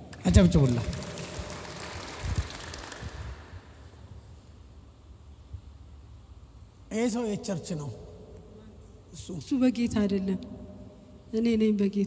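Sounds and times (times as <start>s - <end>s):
congregation clapping: 0.0s - 4.0s.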